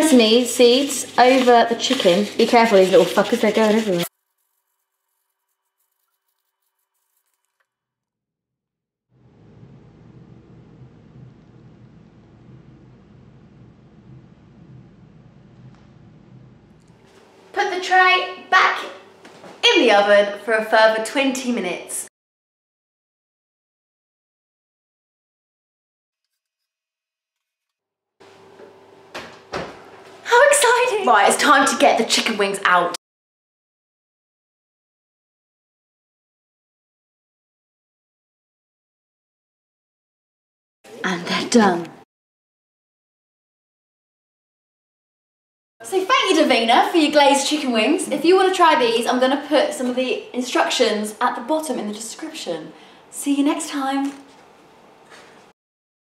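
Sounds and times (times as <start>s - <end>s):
faint steady hum: 9.2s - 18.6s.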